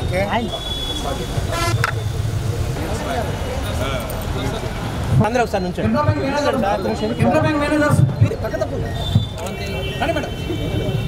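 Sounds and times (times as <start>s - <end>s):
crowd chatter: 0.0s - 11.0s
car horn toot: 0.5s - 2.1s, 8.9s - 11.0s.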